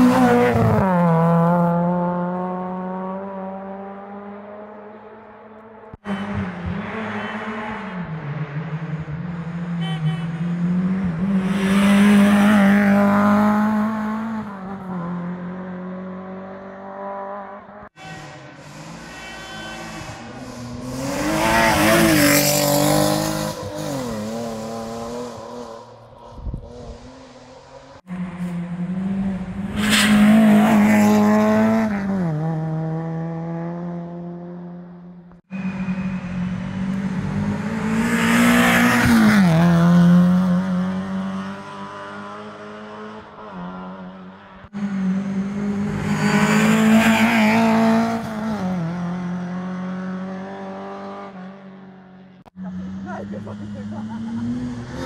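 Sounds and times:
rally cars passing at speed: 0:00.0 - 0:55.0.

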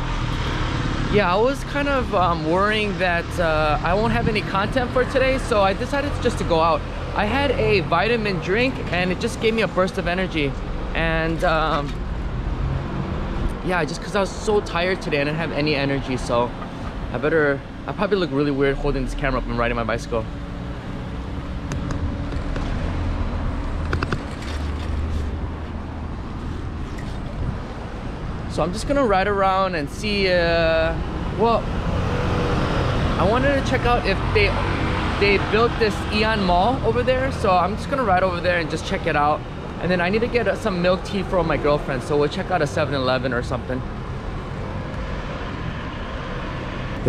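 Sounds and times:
street traffic rumble: 0:00.0 - 0:47.0.

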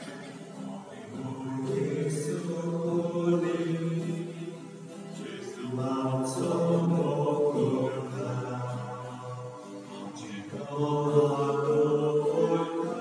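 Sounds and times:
hymn sung in held notes: 0:00.0 - 0:13.0.

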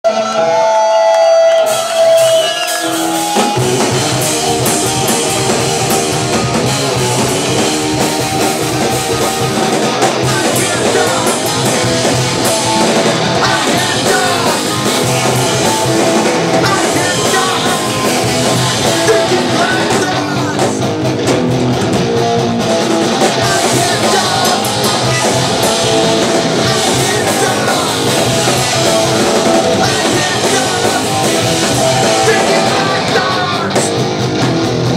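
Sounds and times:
drums: 0:00.1 - 0:34.9
electric guitars: 0:00.1 - 0:34.9
punk rock band playing live: 0:00.1 - 0:34.9
person singing into a microphone: 0:10.2 - 0:12.2, 0:13.4 - 0:16.0, 0:16.6 - 0:20.8, 0:23.4 - 0:25.9, 0:26.6 - 0:33.9.

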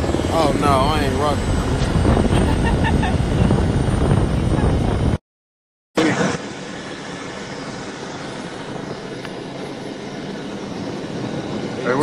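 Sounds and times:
helicopter rotor and engine drone: 0:00.0 - 0:05.2, 0:06.0 - 0:12.0.

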